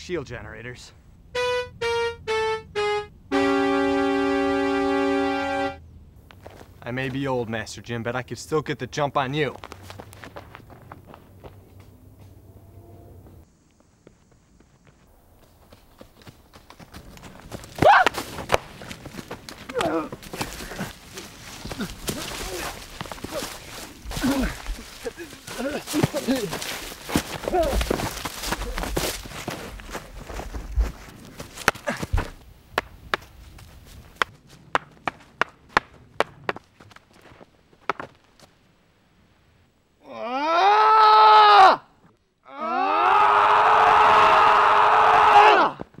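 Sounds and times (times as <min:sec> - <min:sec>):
synthesizer descending comic notes: 0:01.4 - 0:05.8
people grunting: 0:17.8 - 0:18.2, 0:19.6 - 0:28.9, 0:31.8 - 0:32.3, 0:40.0 - 0:41.8, 0:42.5 - 0:45.8.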